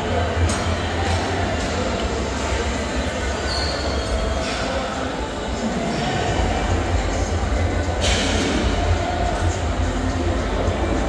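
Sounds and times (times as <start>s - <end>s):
faint background voices: 0.0s - 11.0s.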